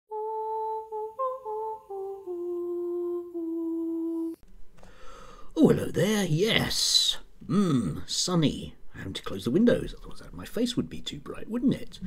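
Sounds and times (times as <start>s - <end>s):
person humming a tune: 0.1s - 4.4s.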